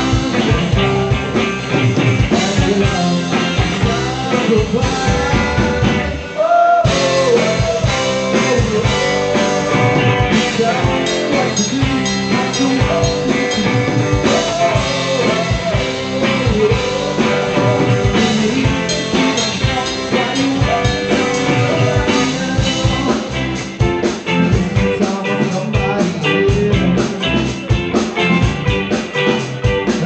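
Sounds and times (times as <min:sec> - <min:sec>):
lead vocal singing: 0:00.0 - 0:27.8
bass guitar: 0:00.0 - 0:30.0
drum kit: 0:00.0 - 0:30.0
electric guitars: 0:00.0 - 0:30.0.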